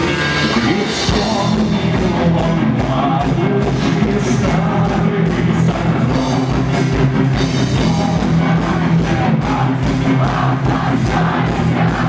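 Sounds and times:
punk rock band playing live: 0:00.0 - 0:12.0.

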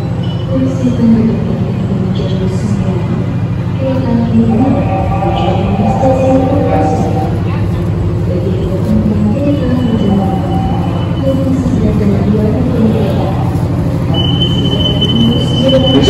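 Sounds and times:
diesel train hum: 0:00.0 - 0:16.0
indistinct passenger voices: 0:00.0 - 0:16.0
high steady tone: 0:04.3 - 0:07.5.

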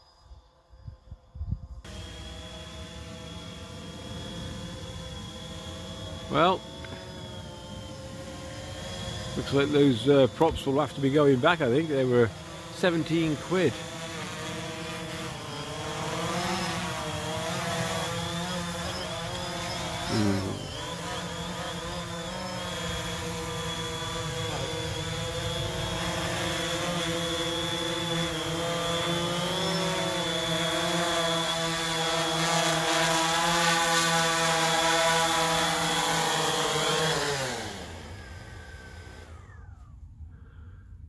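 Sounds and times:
quadcopter motors whining: 0:00.0 - 0:41.0.

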